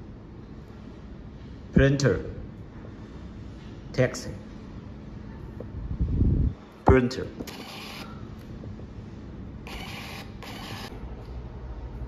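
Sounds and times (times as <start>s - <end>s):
receipt printer buzzing: 9.6s - 10.9s.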